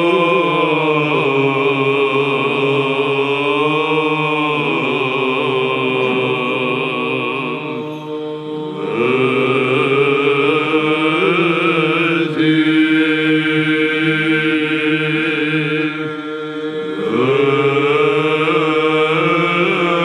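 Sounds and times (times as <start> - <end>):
male voices chanting: 0.0 - 20.0
low held drone voices: 14.9 - 20.0.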